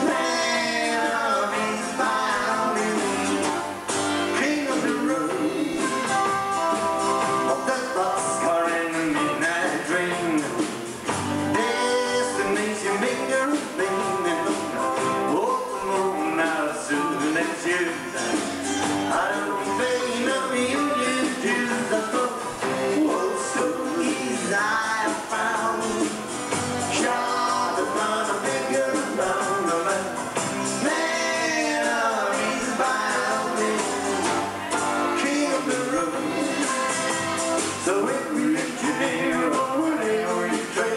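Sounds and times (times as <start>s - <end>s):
live country band playing: 0.0s - 40.9s.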